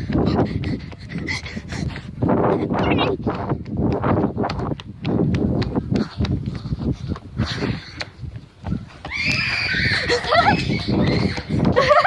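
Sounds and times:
heavy breathing: 0.0s - 2.8s
running footsteps: 0.0s - 12.0s.

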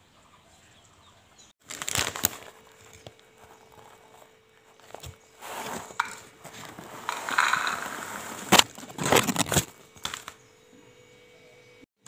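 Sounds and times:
sharp paper cracks: 1.6s - 3.2s
newspaper rustling and crackling: 1.6s - 10.4s.

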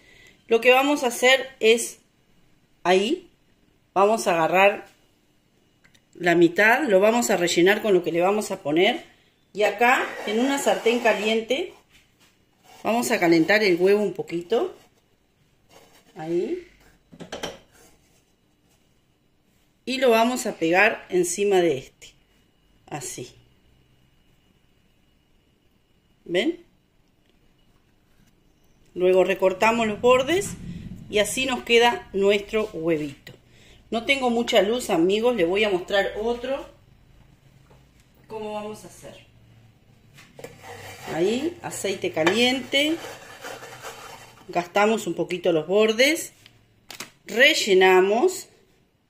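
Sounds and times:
chocolate scraping on frying pan: 9.8s - 11.9s, 12.6s - 14.0s, 15.6s - 16.4s, 40.4s - 44.8s
soft rubbing: 10.0s - 13.8s, 14.5s - 16.4s, 40.4s - 41.6s, 42.5s - 44.6s.

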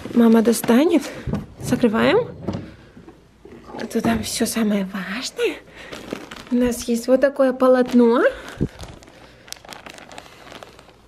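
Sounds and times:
plastic bag crinkling: 5.4s - 11.0s.

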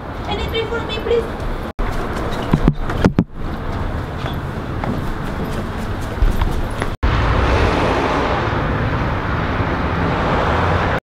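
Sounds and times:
outdoor background noise: 0.0s - 11.0s
footsteps: 0.2s - 7.0s.

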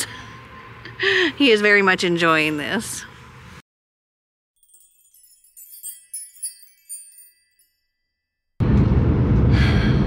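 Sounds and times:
tinkling chime effect: 4.6s - 8.6s.

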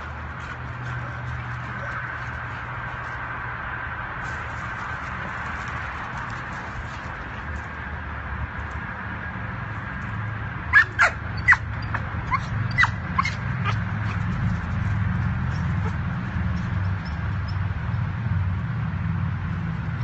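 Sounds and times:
dog yipping: 10.7s - 14.2s.

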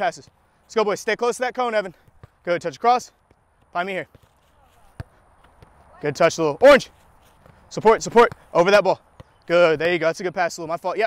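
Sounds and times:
foot kicking soccer ball: 1.9s - 2.5s, 3.2s - 6.0s, 6.8s - 8.5s, 9.1s - 9.4s.

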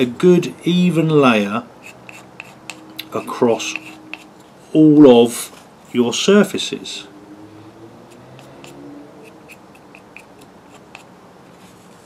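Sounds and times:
wooden stirrer scraping: 1.8s - 4.5s, 8.1s - 12.0s.

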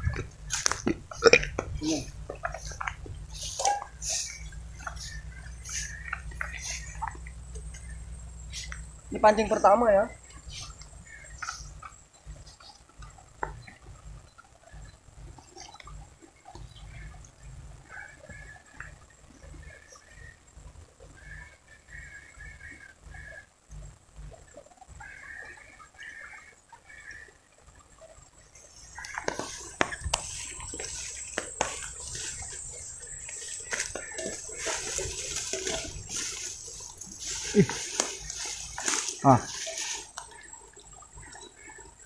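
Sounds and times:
grass rustling and snapping: 0.0s - 8.9s, 28.8s - 40.5s
faint high chirps: 1.8s - 17.4s.

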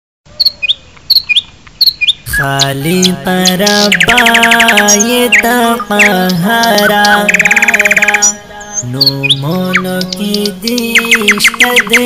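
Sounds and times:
bird chirping: 0.3s - 12.0s.

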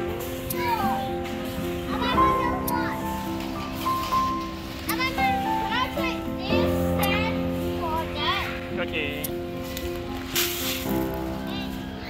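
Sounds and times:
background music with held notes: 0.0s - 12.0s
children's voices and chatter: 0.0s - 12.0s.

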